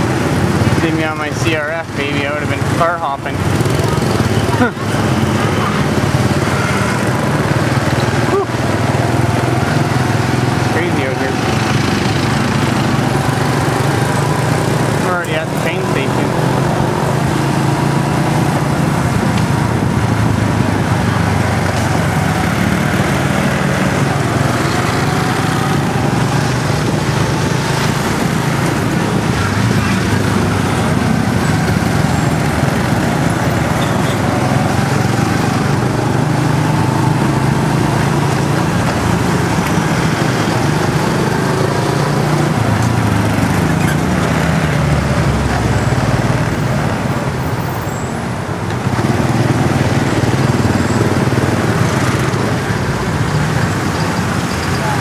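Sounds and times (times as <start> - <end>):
street traffic hum: 0.0 - 55.0
small motorcycle engine running: 3.4 - 46.2.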